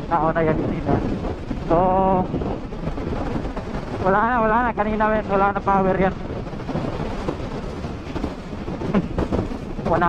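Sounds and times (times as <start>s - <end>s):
tyres cruising on road: 0.0s - 10.0s
wind rushing over microphone: 0.0s - 10.0s.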